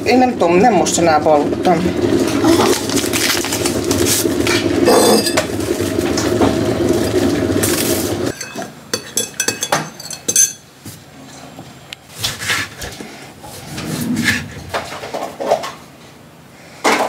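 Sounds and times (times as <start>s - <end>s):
electric kettle boiling: 0.0s - 8.6s
metal spoon clinking on mug: 4.9s - 5.5s, 8.3s - 10.6s
kitchenware being handled: 4.9s - 5.6s, 8.3s - 10.7s.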